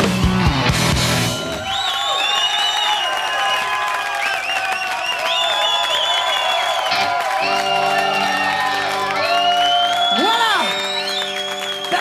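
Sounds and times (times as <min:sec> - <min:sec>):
live rock band: 0:00.0 - 0:01.7, 0:06.9 - 0:12.0
audience cheering and clapping: 0:00.0 - 0:12.0.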